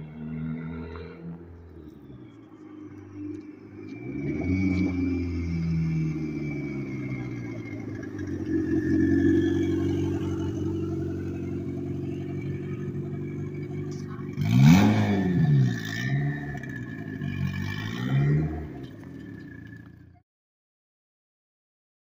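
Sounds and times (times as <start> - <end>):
car engine throttle blips: 0.0 - 20.2
car engine running: 1.4 - 20.2.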